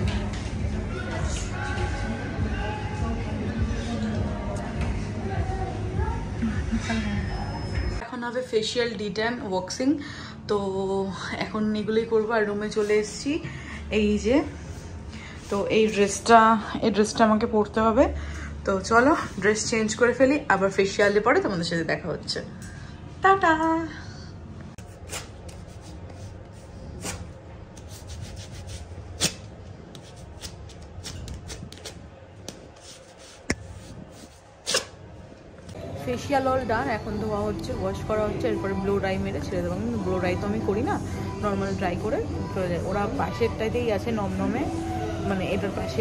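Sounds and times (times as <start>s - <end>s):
hand rubbing paper strip: 24.9s - 34.9s
wax strip ripping off: 27.9s - 33.6s, 34.6s - 35.0s.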